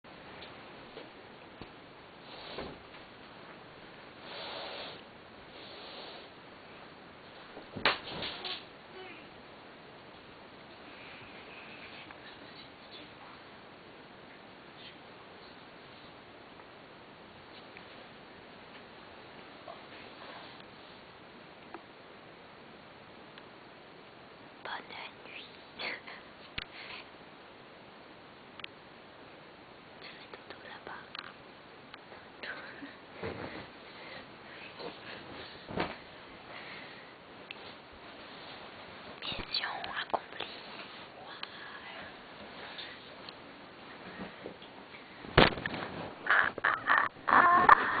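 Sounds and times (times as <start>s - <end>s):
person whispering: 11.5s - 13.4s, 24.7s - 26.3s, 30.0s - 31.4s, 39.2s - 42.2s
body thudding onto floor: 33.2s - 33.7s, 35.7s - 36.1s, 45.3s - 46.2s.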